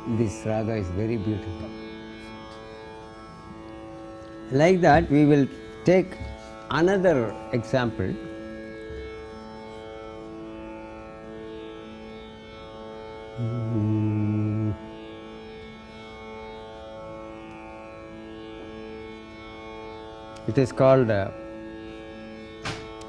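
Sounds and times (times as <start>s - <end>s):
steady drone: 0.0s - 17.0s
low held note: 13.4s - 15.0s.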